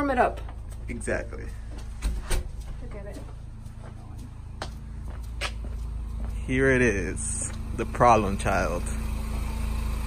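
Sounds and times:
footsteps on concrete: 0.0s - 8.6s
car engine idling: 0.0s - 10.0s.

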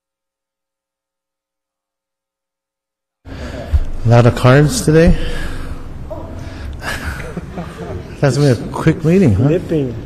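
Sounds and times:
room noise with low hum: 3.3s - 10.0s
faint breath or murmur: 5.1s - 8.2s.

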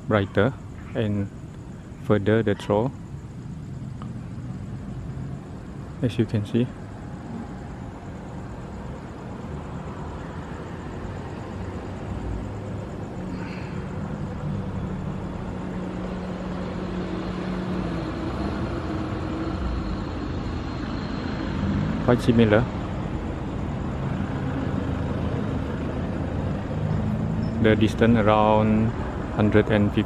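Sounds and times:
outdoor rumble and hiss: 0.0s - 30.0s.

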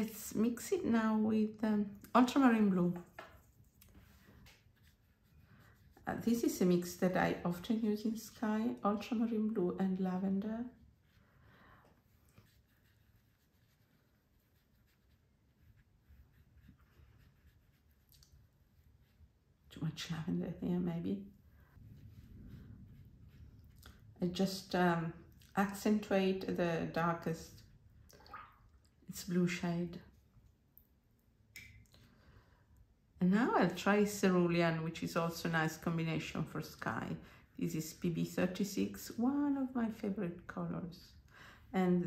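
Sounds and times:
paintbrush brushing on paper: 1.4s - 28.0s.

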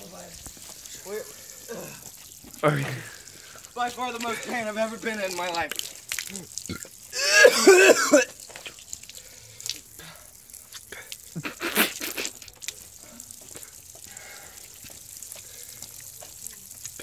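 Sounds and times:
water splashing and dripping: 0.0s - 17.0s.

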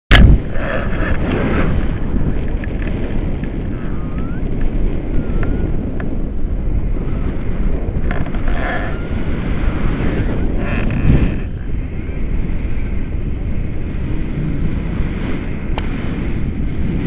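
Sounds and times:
wind buffeting microphone: 0.1s - 17.0s.

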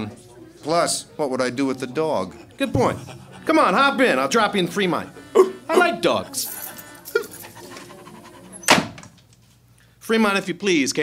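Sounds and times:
dog panting: 2.1s - 5.2s, 6.0s - 8.8s.

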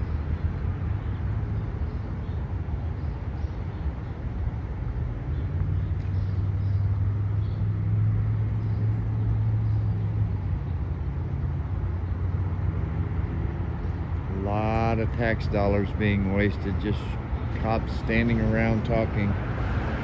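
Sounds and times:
street noise: 0.0s - 20.0s
vehicle engine humming: 0.0s - 20.0s.

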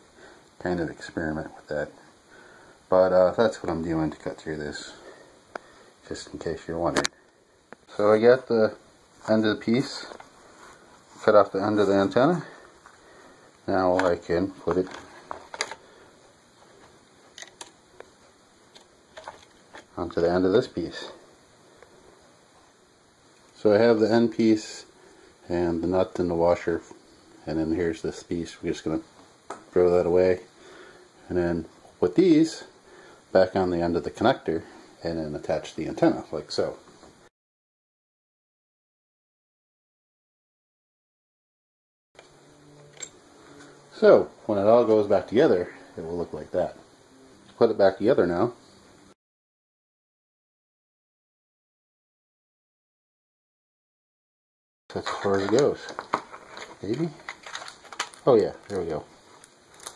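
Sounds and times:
faint steady hum: 0.0s - 37.3s, 42.2s - 49.2s, 54.9s - 59.9s
small parts clicking and tapping: 17.3s - 17.8s
plastic controller handling: 55.0s - 58.8s.

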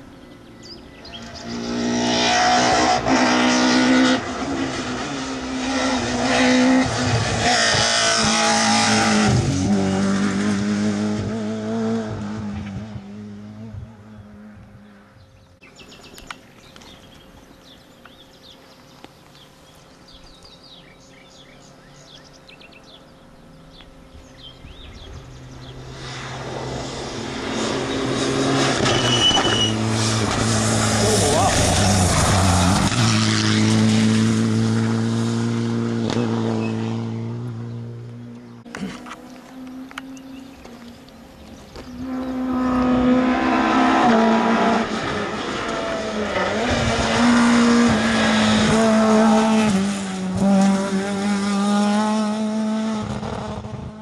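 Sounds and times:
car engine approaching: 0.0s - 54.0s
rally car engine passing: 0.4s - 15.2s, 24.4s - 54.0s.

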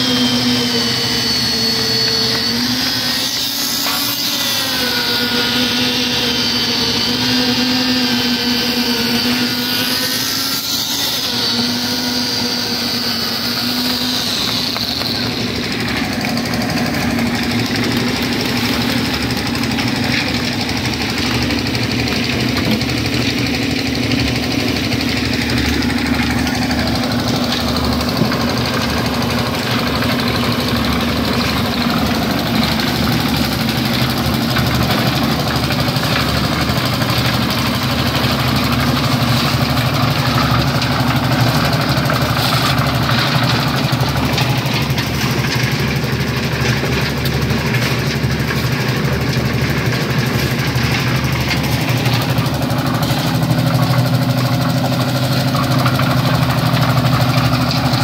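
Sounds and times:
concrete machinery engine humming: 0.0s - 58.0s.

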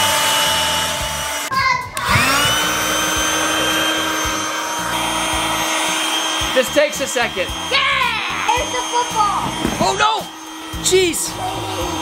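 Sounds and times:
electric air pump humming: 0.0s - 12.0s.

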